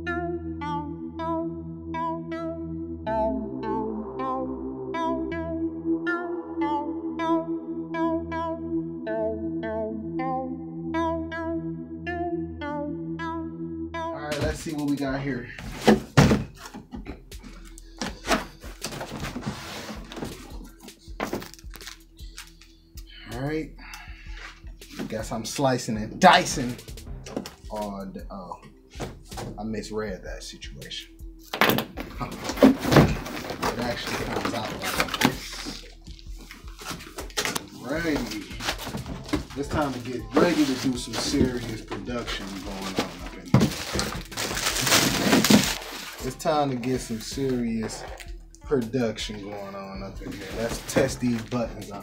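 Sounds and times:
faint background music: 0.0s - 52.0s
cardboard box thumps: 15.8s - 16.6s, 32.3s - 33.8s, 43.0s - 45.8s
cardboard scraping: 18.0s - 20.6s, 32.0s - 35.9s, 36.5s - 46.2s
plastic wrap crackling: 37.2s - 46.2s.

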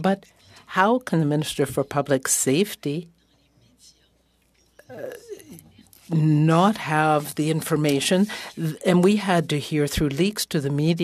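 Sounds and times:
person saying uh: 4.8s - 5.8s.

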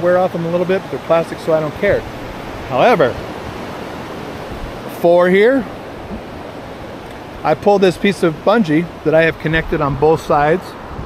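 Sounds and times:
ocean surf: 0.0s - 11.0s.

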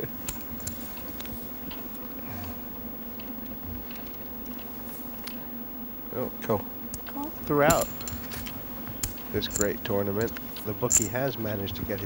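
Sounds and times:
low electrical buzz: 0.0s - 12.0s.

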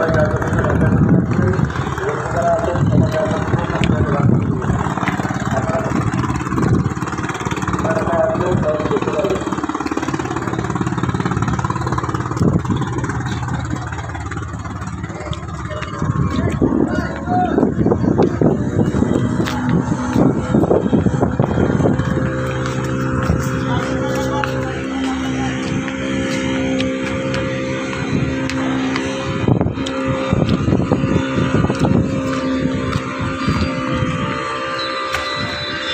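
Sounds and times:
engine idling: 0.0s - 35.9s
low rumbles: 0.0s - 35.9s.

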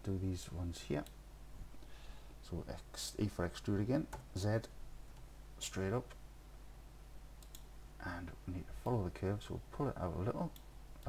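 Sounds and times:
low electrical hum: 0.0s - 11.0s
computer mouse clicks: 7.4s - 7.7s.

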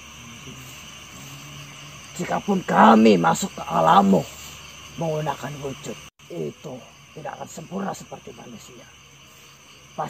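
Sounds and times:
even hiss: 0.0s - 10.0s.

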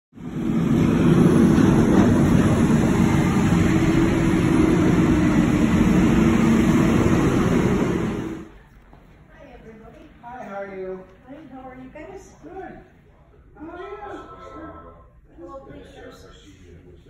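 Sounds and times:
low engine hum: 0.2s - 8.6s
street traffic noise: 0.2s - 9.0s.

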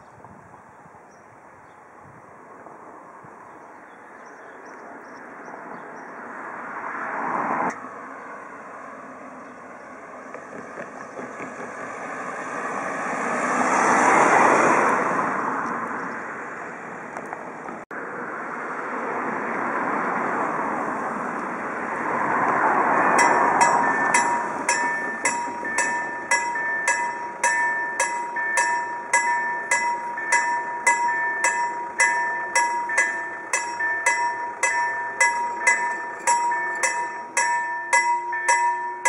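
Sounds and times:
level crossing warning bells: 23.0s - 39.0s
steady ringing tone: 23.2s - 39.0s.

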